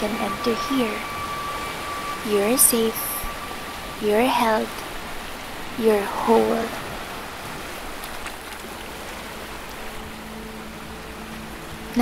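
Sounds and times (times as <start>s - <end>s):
faint held low tones: 0.0s - 8.0s, 8.9s - 12.0s
rain-like hiss: 0.0s - 12.0s.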